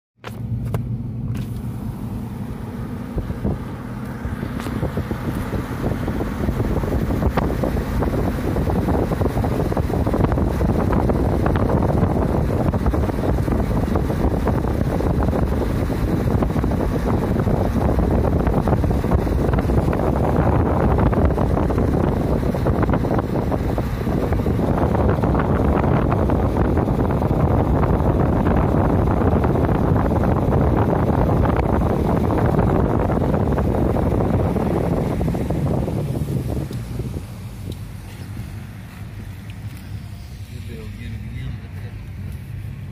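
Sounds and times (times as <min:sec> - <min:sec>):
car road rumble: 0:00.2 - 0:42.9
wind buffeting microphone: 0:01.7 - 0:42.9.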